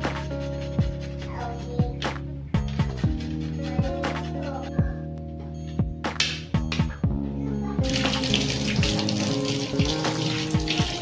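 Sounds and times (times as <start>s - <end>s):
background music with bass: 0.0s - 11.0s
tap water over hands: 7.8s - 11.0s.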